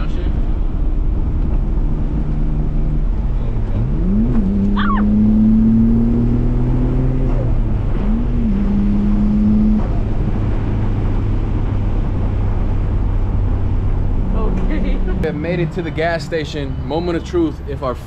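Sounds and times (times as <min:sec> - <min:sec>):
car engine revving from inside cabin: 0:02.0 - 0:11.7.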